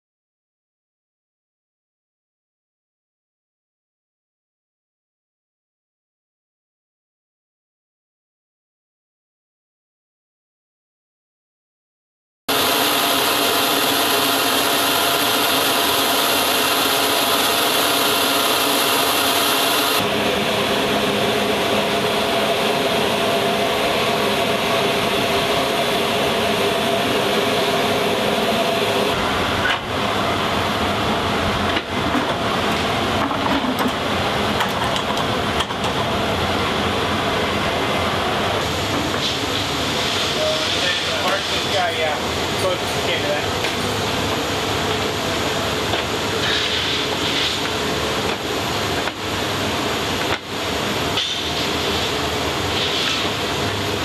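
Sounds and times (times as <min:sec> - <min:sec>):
turbine rushing hiss and whine: 0:12.5 - 0:54.0.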